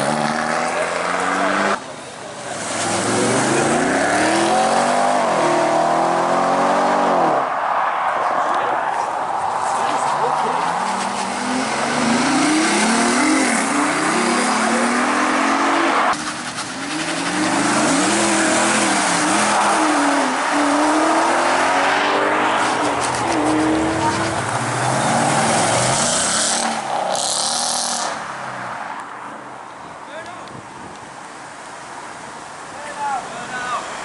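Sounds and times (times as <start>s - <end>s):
sports car engines accelerating: 0.0s - 7.5s, 9.6s - 28.2s.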